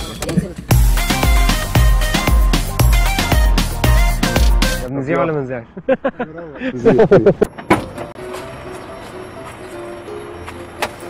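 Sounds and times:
men laughing: 5.7 - 7.6.

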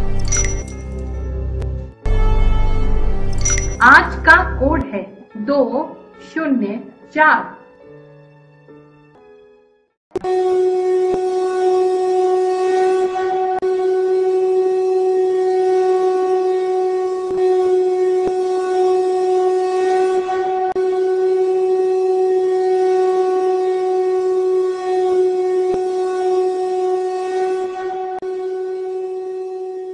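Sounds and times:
horn-like drone: 0.0 - 4.8, 10.2 - 29.9.

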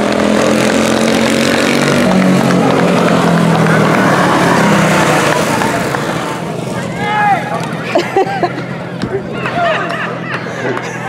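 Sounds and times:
race car engine passing by: 0.0 - 11.0.

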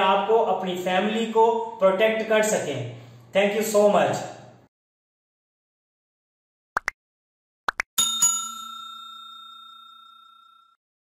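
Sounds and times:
bell ding ringing: 8.0 - 10.8.

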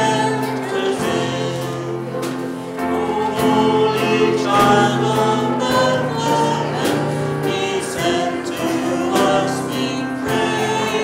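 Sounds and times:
instrumental accompaniment: 0.0 - 11.0
man and woman singing: 0.0 - 11.0.

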